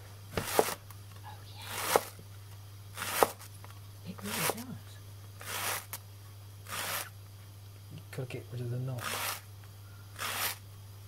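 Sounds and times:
knife crunching through leek: 0:03.0 - 0:03.5, 0:05.4 - 0:06.0, 0:06.7 - 0:07.1, 0:09.0 - 0:09.5, 0:10.2 - 0:10.6.

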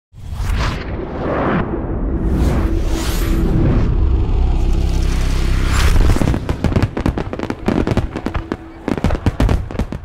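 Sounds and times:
fireworks bangs and crackles: 0:06.0 - 0:10.0.

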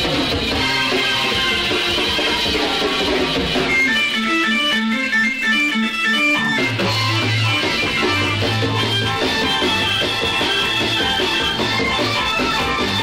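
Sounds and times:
bass guitar: 0:00.0 - 0:13.0
electric guitar picking notes: 0:00.0 - 0:13.0.

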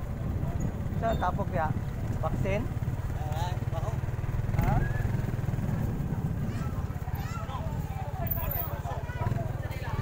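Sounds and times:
motorcycle engine running: 0:00.0 - 0:10.0
people's voices: 0:00.3 - 0:10.0.

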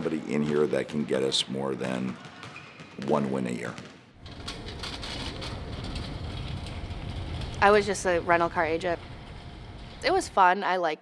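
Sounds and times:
basketballs rattling: 0:00.0 - 0:10.3
ball cart rolling on wooden floor: 0:04.2 - 0:10.4.

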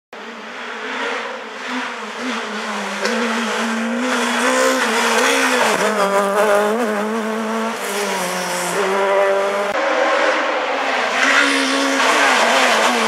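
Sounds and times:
rally car engine approaching: 0:00.2 - 0:13.0.

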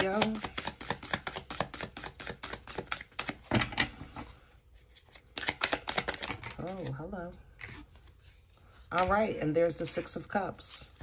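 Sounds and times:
cards being shuffled: 0:00.0 - 0:03.5, 0:04.9 - 0:07.0.

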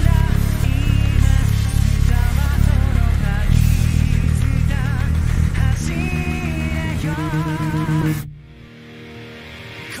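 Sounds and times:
electric bass rapid notes: 0:00.0 - 0:08.8
rock band music: 0:00.0 - 0:10.0.

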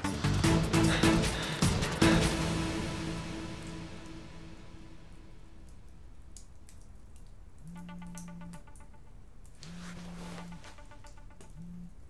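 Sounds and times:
phone vibrating on wooden table: 0:07.7 - 0:09.0, 0:09.7 - 0:12.0.

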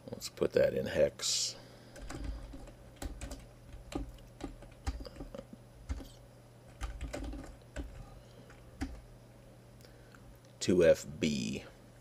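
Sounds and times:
keyboard typing clicks: 0:02.0 - 0:09.0.

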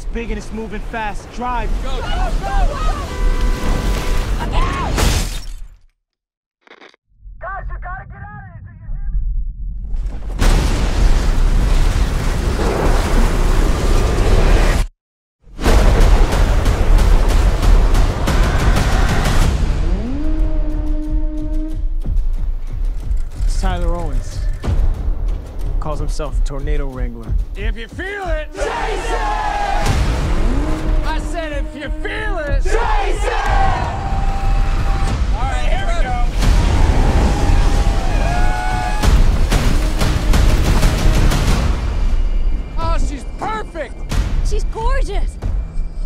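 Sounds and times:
person shouting: 0:01.9 - 0:03.3
deep rumble: 0:07.2 - 0:14.8, 0:15.6 - 0:27.6, 0:29.8 - 0:32.7
heavy bass trailer music: 0:15.5 - 0:46.0
loud wind roar: 0:32.6 - 0:42.8.

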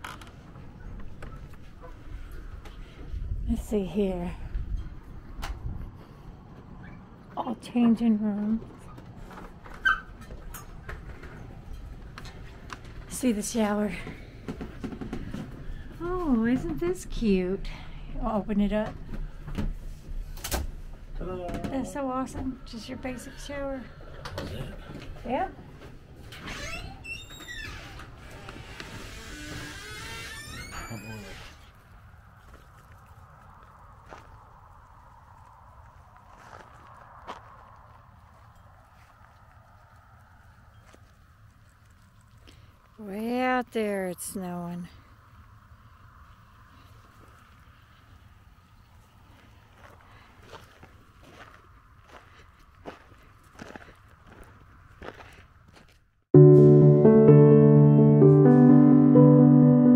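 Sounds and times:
faint outdoor air: 0:00.0 - 0:56.4
door squeaking and knocking: 0:09.7 - 0:10.7, 0:26.3 - 0:31.6
footsteps on gravel: 0:35.4 - 0:39.3, 0:49.4 - 0:56.0.

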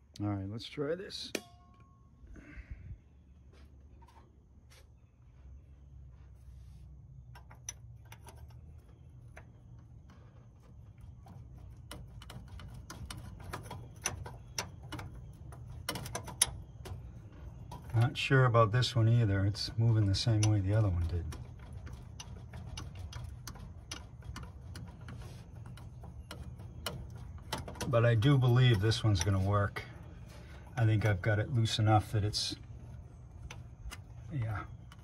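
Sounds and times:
low steady hum: 0:00.0 - 0:35.0.

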